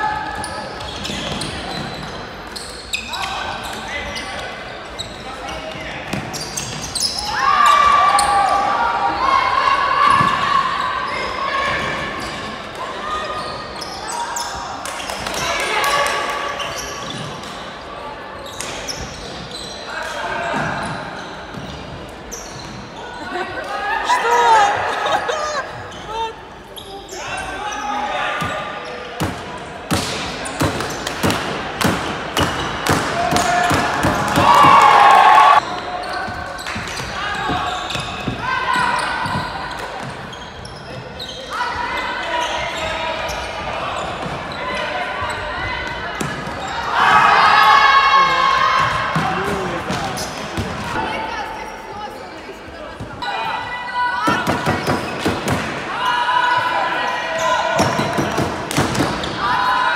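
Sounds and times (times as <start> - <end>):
players shouting: 32.4 - 36.4, 41.3 - 51.2.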